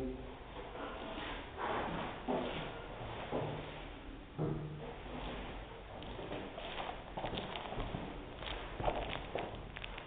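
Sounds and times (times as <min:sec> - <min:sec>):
footsteps on wooden floor: 0:05.1 - 0:09.9.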